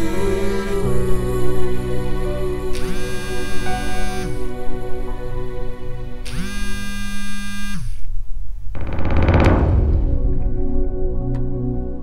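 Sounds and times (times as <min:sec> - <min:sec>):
noisy whooshing hit: 0:08.8 - 0:11.2
low drone: 0:08.8 - 0:12.0.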